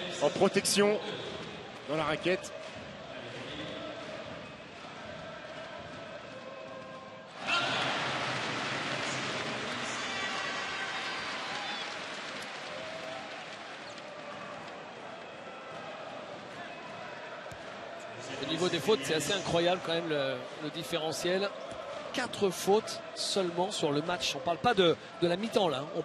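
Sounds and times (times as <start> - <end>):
crowd cheering and applauding: 3.8 - 26.0.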